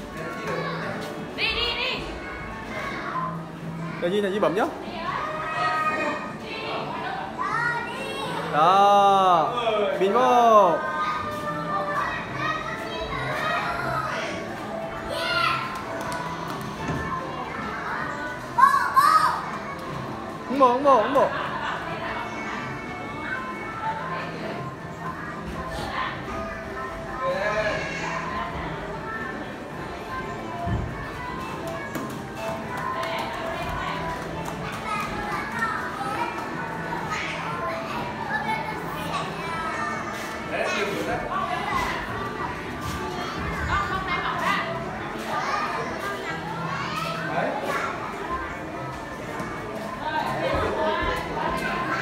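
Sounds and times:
children's voices and calls: 0:00.0 - 0:52.0.

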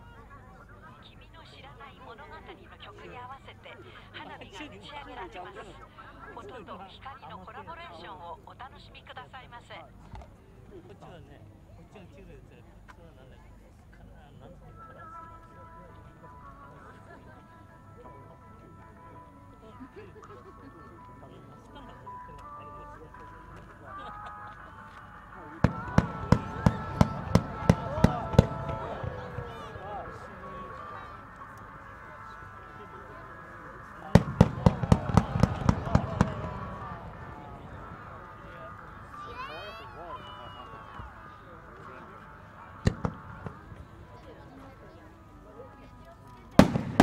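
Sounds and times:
crowd chatter: 0:00.0 - 0:47.0
music over loudspeakers: 0:21.0 - 0:44.9
fireworks bursting: 0:25.6 - 0:30.2, 0:34.1 - 0:39.2, 0:42.8 - 0:44.0, 0:46.6 - 0:47.0.

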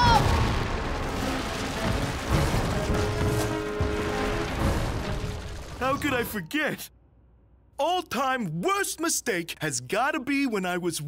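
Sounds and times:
rumbling crackling noise effect: 0:00.2 - 0:06.3.

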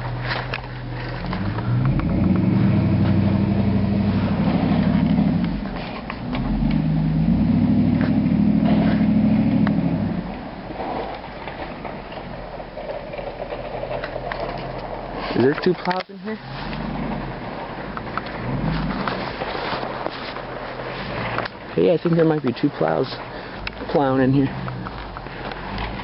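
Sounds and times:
truck engine revving: 0:00.0 - 0:11.1, 0:16.3 - 0:21.9, 0:23.6 - 0:26.0.

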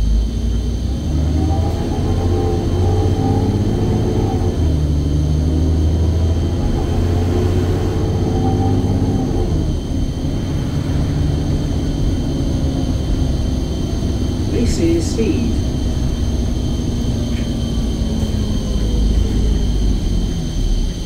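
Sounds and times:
bus diesel engine pulling hard: 0:00.0 - 0:21.0.

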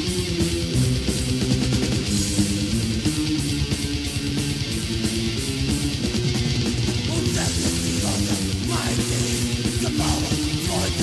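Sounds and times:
bass guitar: 0:00.0 - 0:11.0
distorted electric guitar riff: 0:00.0 - 0:11.0
busy drumming: 0:01.5 - 0:11.0.

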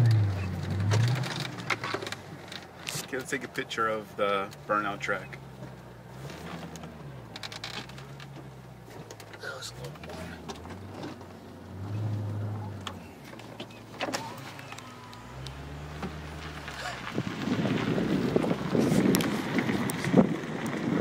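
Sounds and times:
car engine hum: 0:00.0 - 0:21.0
road and wind noise: 0:00.0 - 0:21.0.

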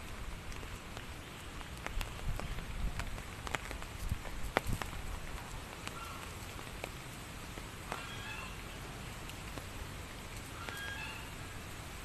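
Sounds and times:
light rain: 0:00.0 - 0:12.0
water dripping: 0:00.0 - 0:12.0
high-pitched animal calls: 0:08.0 - 0:08.6, 0:10.6 - 0:11.4.

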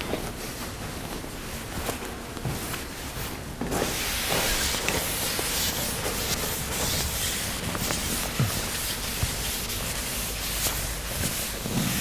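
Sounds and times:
chalkboard being wiped: 0:03.8 - 0:12.0.

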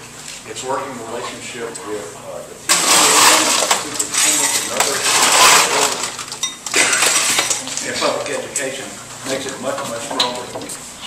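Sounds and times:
cutlery and dishes clinking: 0:02.7 - 0:07.7.

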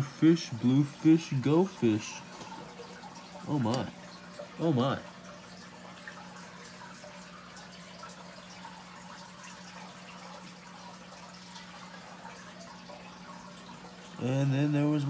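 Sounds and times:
aquarium filter humming: 0:00.0 - 0:15.0
trickling dripping water: 0:00.0 - 0:15.0.

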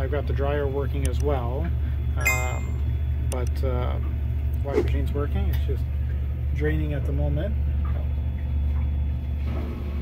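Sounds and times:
washing machine drain pump humming: 0:00.0 - 0:10.0.

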